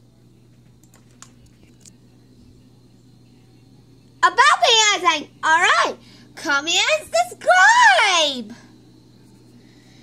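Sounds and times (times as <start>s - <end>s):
steady low hum: 0.0s - 10.0s
faint computer clicks: 0.5s - 2.0s.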